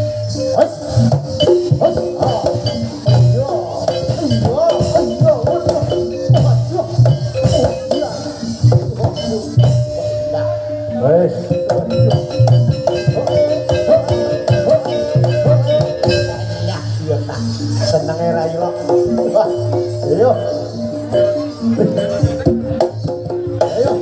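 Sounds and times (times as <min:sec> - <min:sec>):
metallophone tones: 0:00.0 - 0:24.0
sharp percussion strokes: 0:00.0 - 0:24.0
wavering melody line: 0:00.0 - 0:24.0
low drum beats: 0:01.0 - 0:10.3, 0:11.3 - 0:24.0.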